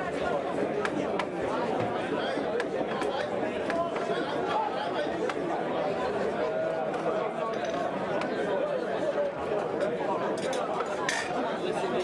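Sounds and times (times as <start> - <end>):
murmured chatter of spectators: 0.0 - 12.0.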